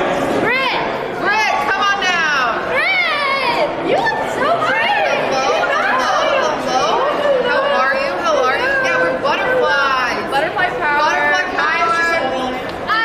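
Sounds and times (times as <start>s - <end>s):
people talking over one another: 0.0s - 13.0s.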